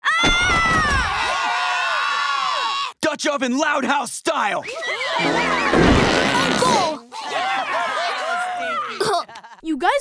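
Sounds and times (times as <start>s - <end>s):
cartoon children shouting and whooping: 0.0s - 2.9s, 4.6s - 9.4s
falling cries: 4.7s - 9.0s.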